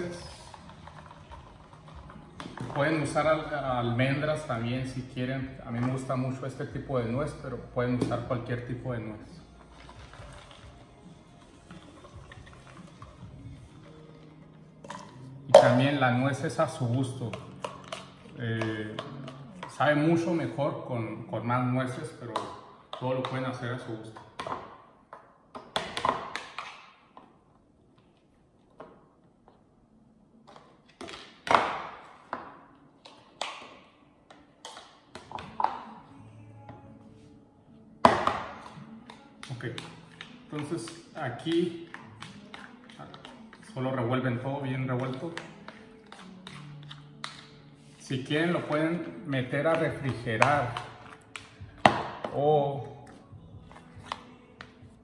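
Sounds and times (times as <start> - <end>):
spoon knocking and scraping bowls: 17.2 - 20.1, 38.2 - 43.9, 44.9 - 49.0.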